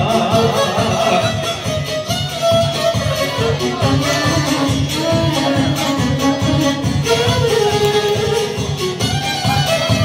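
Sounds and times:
live folk band playing: 0:00.0 - 0:10.0.

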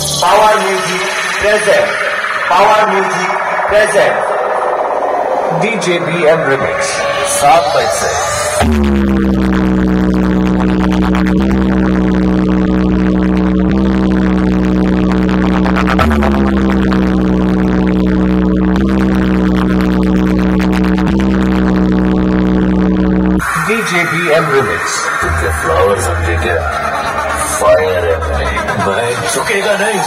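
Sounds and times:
electronic buzzing drone: 0:00.0 - 0:30.0.

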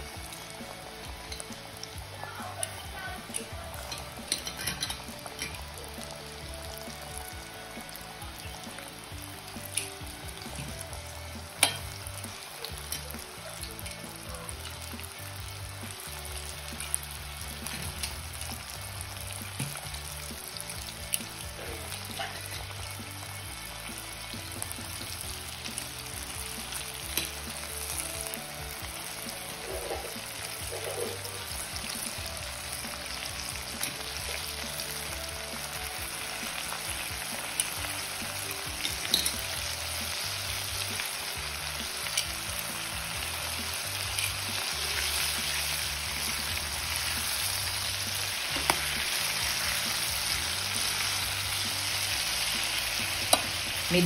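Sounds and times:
chicken deep-frying in oil: 0:00.0 - 0:54.0
oil popping and crackling: 0:00.0 - 0:54.0
tongs stirring in oil: 0:00.2 - 0:05.8, 0:11.5 - 0:15.2, 0:15.8 - 0:54.0.

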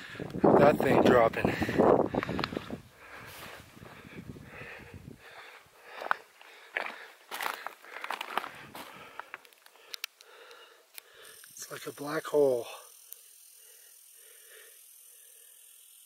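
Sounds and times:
wind rumbling on microphone: 0:00.0 - 0:05.3
footsteps crunching on scree: 0:00.8 - 0:09.9.

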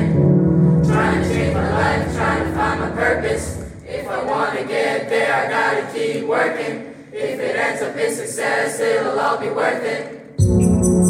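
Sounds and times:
choir singing pop song: 0:00.0 - 0:00.2, 0:00.8 - 0:10.6
bass: 0:10.4 - 0:11.0.

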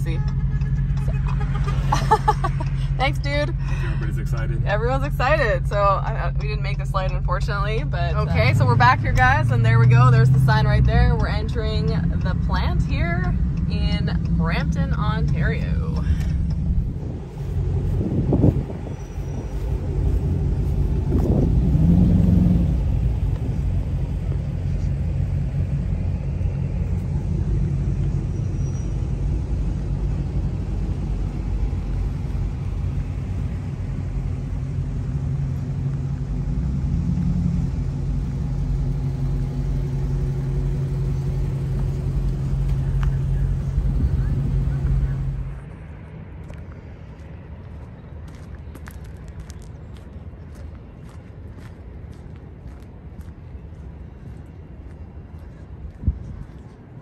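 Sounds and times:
car engines idling: 0:00.0 - 0:57.0.

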